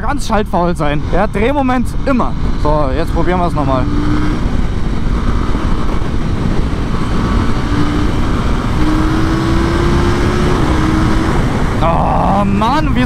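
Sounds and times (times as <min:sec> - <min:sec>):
motorcycle engine accelerating: 0:00.0 - 0:13.0
wind noise on microphone: 0:00.0 - 0:13.0.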